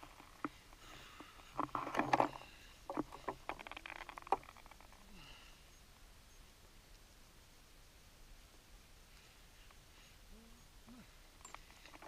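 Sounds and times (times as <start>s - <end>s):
clicks of handled gear: 0.0s - 5.0s, 11.4s - 12.0s
rustling of gear and clothing: 0.0s - 5.6s, 9.0s - 12.0s.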